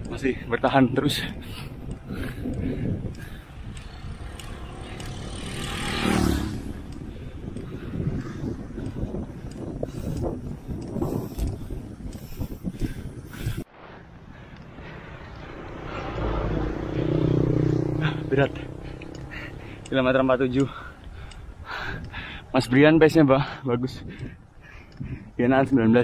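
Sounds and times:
tyre and road noise: 0.0s - 26.0s
wind buffeting microphone: 0.0s - 26.0s.

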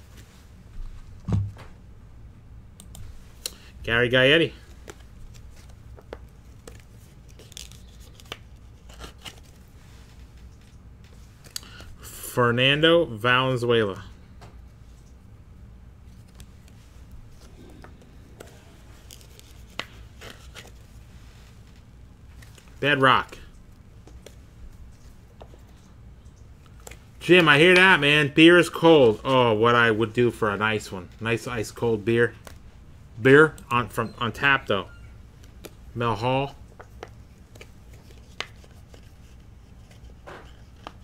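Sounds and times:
low steady hum: 0.0s - 41.0s
handling plastic card sleeve: 3.0s - 11.9s, 16.0s - 30.3s, 35.4s - 35.9s, 36.6s - 41.0s
cards scraping against plastic: 4.6s - 9.6s, 16.1s - 20.9s, 36.8s - 41.0s.

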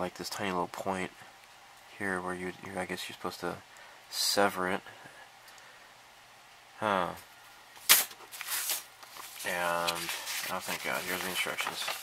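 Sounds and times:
thin metal sheet snapping: 7.8s - 8.2s
metal sheets scraping rustles: 7.8s - 12.0s.

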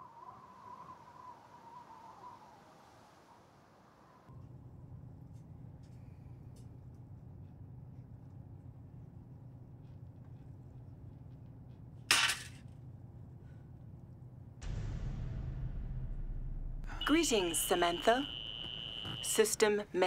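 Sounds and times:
low steady hum: 4.3s - 20.0s.

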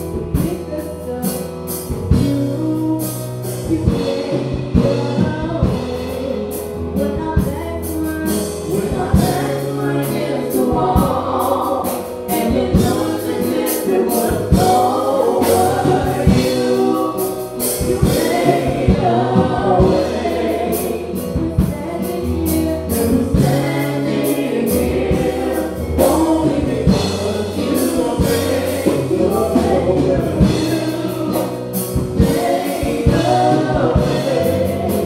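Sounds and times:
drum kit steady beat: 0.0s - 35.0s
keyboard: 0.0s - 35.0s
woman singing gospel: 0.1s - 35.0s.

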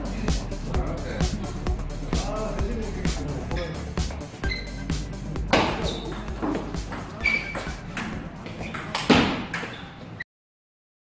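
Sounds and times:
background music: 0.0s - 9.5s.

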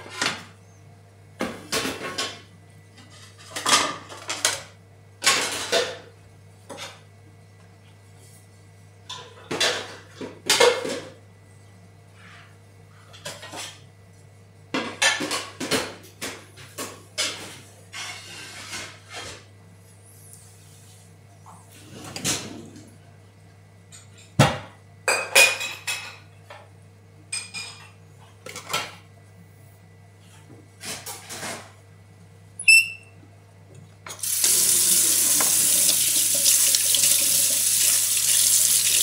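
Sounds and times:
dishes and cutlery clinking: 27.3s - 29.0s.

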